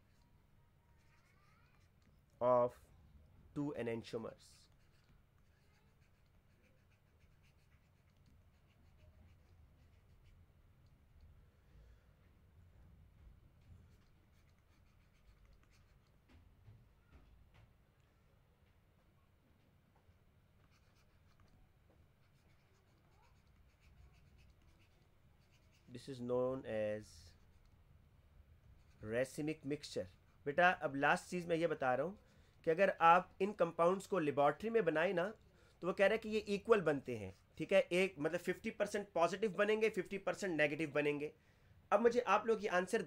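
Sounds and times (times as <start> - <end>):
stylus writing on tablet: 0.0 - 2.3, 4.6 - 11.3, 13.8 - 16.4, 20.6 - 25.9, 28.6 - 35.4.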